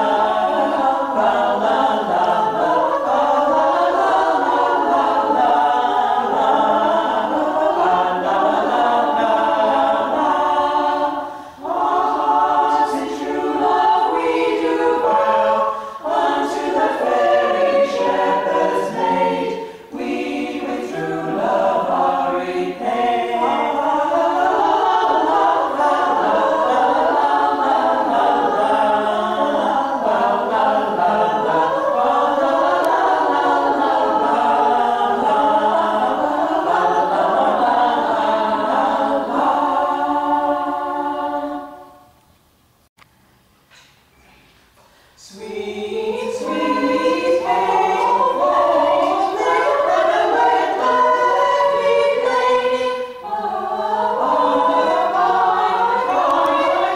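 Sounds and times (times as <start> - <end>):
women singing a cappella: 0.0 - 42.2, 45.1 - 56.9.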